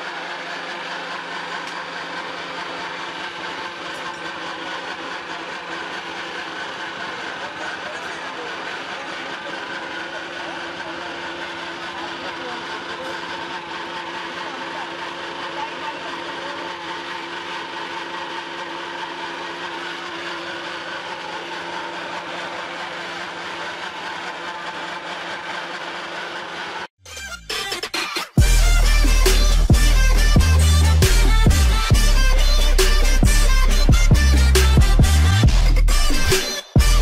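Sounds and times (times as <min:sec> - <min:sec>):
pellet mill mechanical drone: 0:00.0 - 0:37.0.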